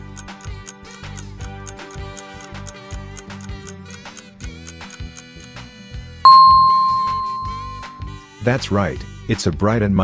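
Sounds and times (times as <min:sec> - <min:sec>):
bright electronic ding: 0:06.3 - 0:08.1.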